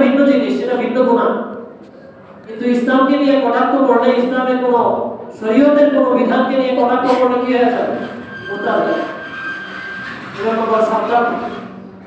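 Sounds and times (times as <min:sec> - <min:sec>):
man speaking: 0:00.0 - 0:01.5, 0:02.4 - 0:09.1.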